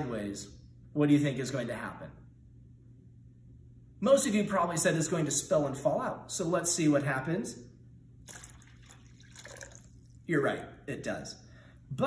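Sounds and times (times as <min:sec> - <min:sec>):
water splashing trickle: 0:08.2 - 0:10.2.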